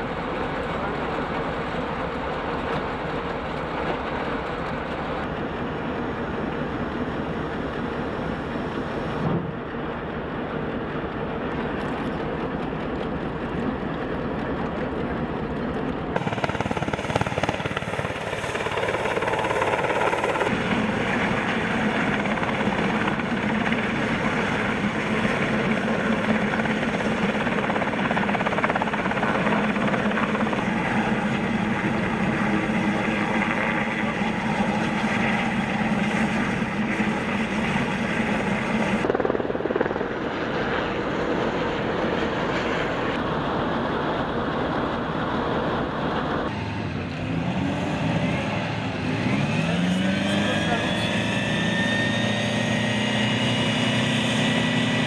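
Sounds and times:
helicopter rotor and turbine: 0:00.0 - 0:55.0.

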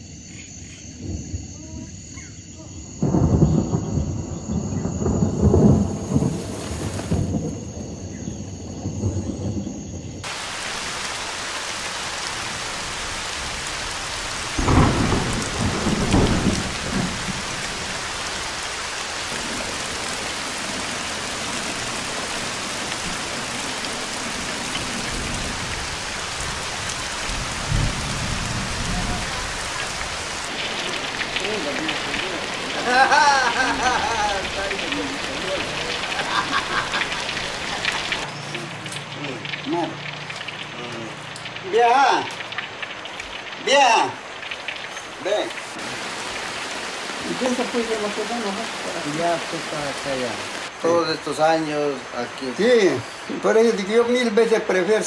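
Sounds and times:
rolling thunder: 0:02.8 - 0:11.0, 0:12.2 - 0:38.3
heavy rain pouring: 0:03.0 - 0:55.0.

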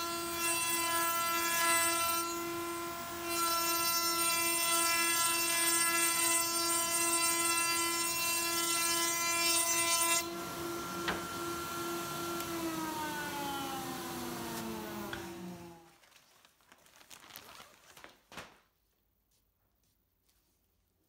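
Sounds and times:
router cutting wood: 0:00.0 - 0:15.9.

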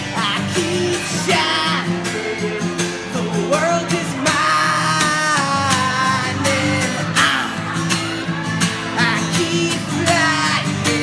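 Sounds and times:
man singing: 0:00.0 - 0:11.0
strummed acoustic guitar: 0:00.0 - 0:11.0.

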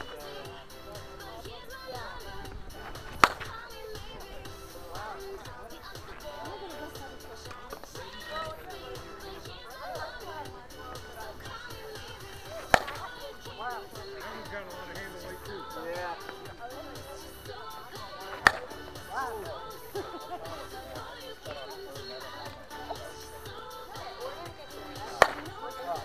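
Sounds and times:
background music: 0:00.0 - 0:26.0
bat hitting softball: 0:02.8 - 0:04.3, 0:12.4 - 0:13.2, 0:18.2 - 0:18.8, 0:25.1 - 0:25.6.

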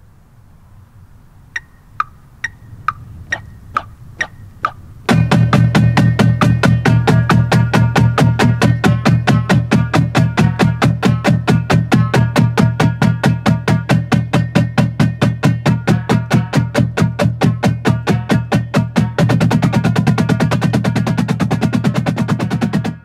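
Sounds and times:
marching drumline playing: 0:05.1 - 0:23.0.

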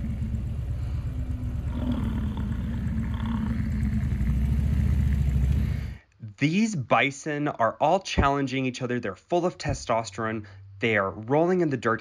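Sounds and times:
bison bellowing: 0:00.8 - 0:05.8.

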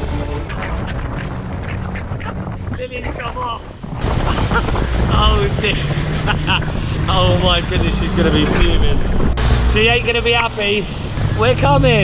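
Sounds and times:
boat wake rushing: 0:00.0 - 0:12.0
wind buffeting microphone: 0:00.5 - 0:12.0.

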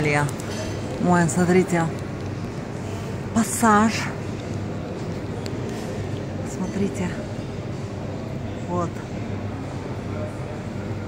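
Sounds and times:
murmur of distant voices: 0:00.0 - 0:11.0.

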